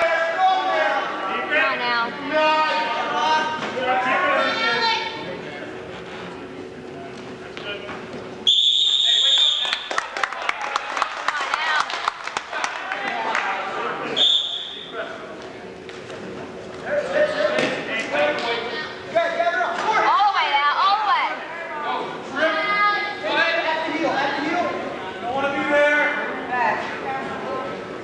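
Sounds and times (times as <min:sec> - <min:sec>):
referee's whistle blast: 0:08.5 - 0:09.8, 0:14.2 - 0:14.9.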